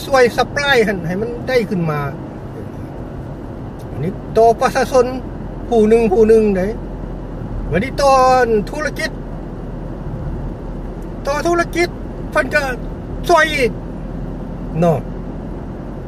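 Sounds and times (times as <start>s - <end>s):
car cabin road and engine noise: 0.0s - 16.0s
man speaking: 4.0s - 6.8s, 7.7s - 9.1s, 11.2s - 13.8s, 14.7s - 15.1s.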